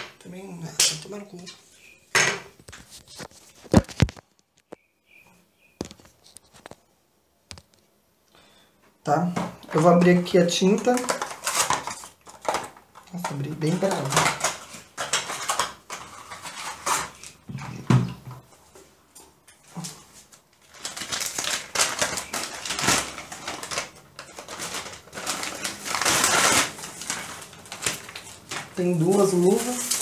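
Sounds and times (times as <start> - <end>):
plastic packaging rustling: 0.8 - 4.8, 9.3 - 30.0.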